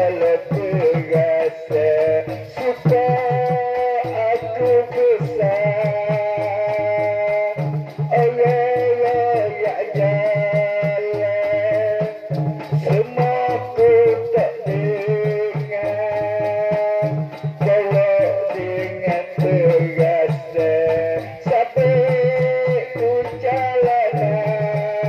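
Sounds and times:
repeating low drum pattern: 0.0 - 25.0.

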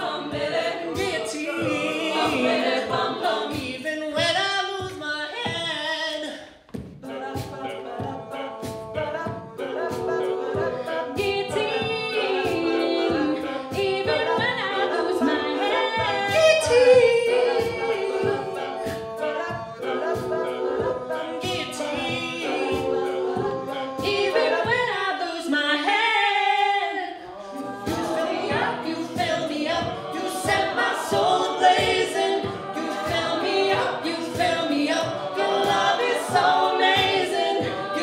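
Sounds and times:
backing voices singing: 0.0 - 38.0
vocal percussion beat: 0.0 - 38.0.

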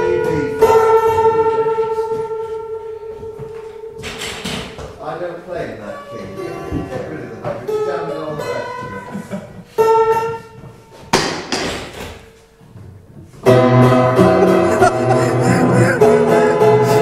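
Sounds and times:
piano notes: 0.0 - 9.2, 12.2 - 17.0
loud piano chords: 13.4 - 17.0.

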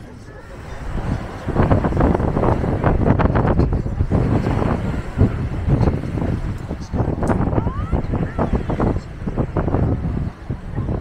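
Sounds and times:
people talking: 0.0 - 11.0
wind buffeting microphone: 0.0 - 11.0.

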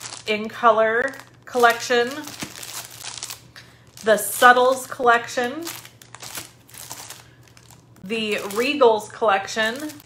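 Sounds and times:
paper wrapping crinkling: 0.0 - 8.8, 9.6 - 10.0.

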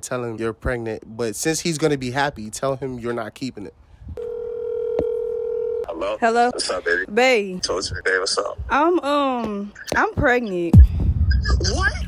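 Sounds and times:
phone ringing tone: 4.2 - 5.9.

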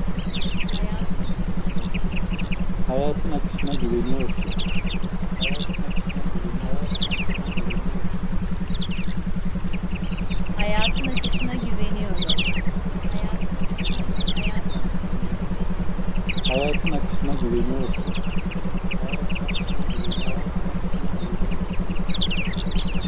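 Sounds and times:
rapidly pulsing low hum: 0.0 - 23.0.

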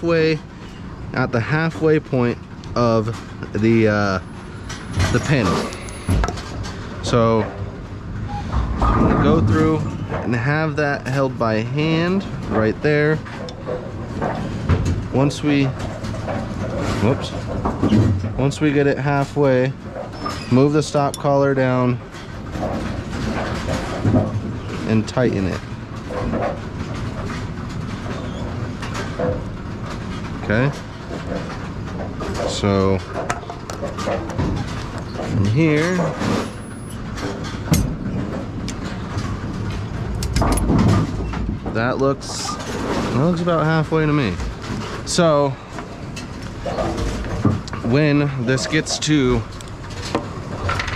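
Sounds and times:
low machinery rumble: 0.0 - 50.9
steady mechanical background noise: 0.0 - 50.9.

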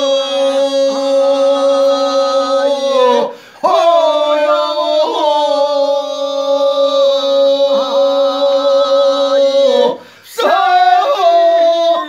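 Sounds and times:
men singing unaccompanied: 0.0 - 12.0.

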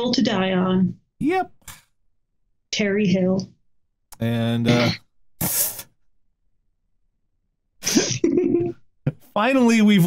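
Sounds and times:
person sneezing: 4.7 - 5.9.

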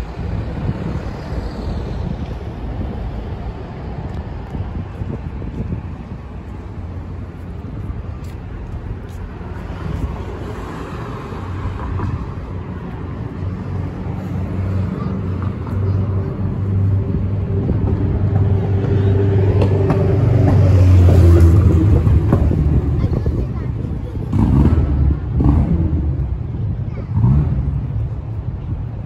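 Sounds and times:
vehicle engine hum: 0.0 - 29.0.

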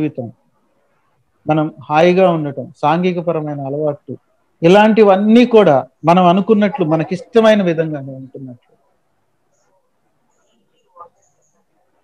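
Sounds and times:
man speaking: 0.0 - 0.4, 1.4 - 8.6
faint bird chirps: 8.5 - 12.0.

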